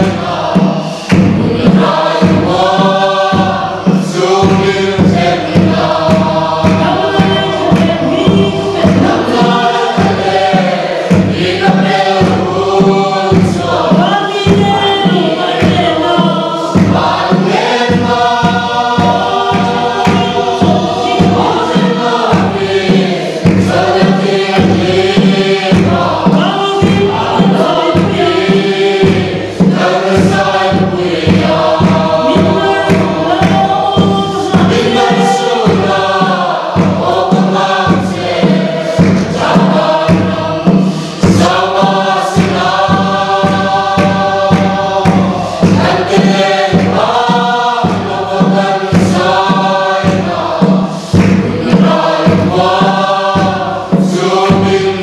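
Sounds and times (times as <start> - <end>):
choir singing a hymn: 0.0 - 55.0
large drum beating: 0.0 - 55.0.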